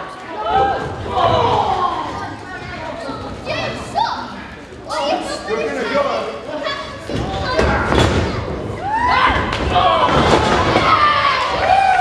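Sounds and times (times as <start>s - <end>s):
children's voices: 0.0s - 11.6s.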